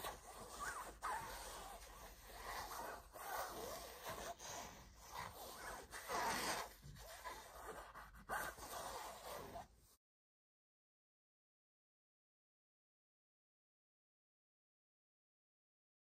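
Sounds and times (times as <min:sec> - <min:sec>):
fingers scratching fabric pouch: 0:00.0 - 0:09.8.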